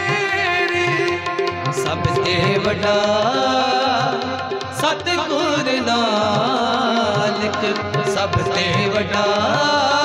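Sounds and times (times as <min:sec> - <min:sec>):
harmoniums holding chords: 0:00.0 - 0:10.0
tabla rhythm: 0:00.0 - 0:10.0.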